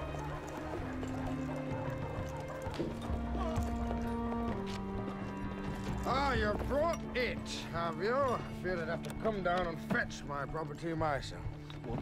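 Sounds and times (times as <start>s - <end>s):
horse hooves on gravel: 0.0s - 12.0s.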